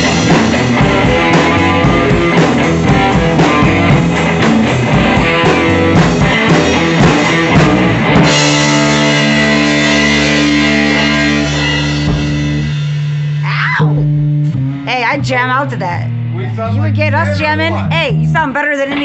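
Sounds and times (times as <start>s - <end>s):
drum kit: 0.0s - 19.0s
electric guitar through amplifier: 0.0s - 19.0s
person shouting hey: 13.4s - 14.0s.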